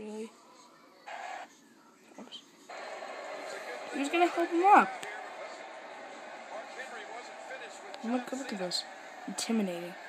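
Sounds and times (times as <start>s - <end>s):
broadcast audio through laptop: 0.0s - 10.0s.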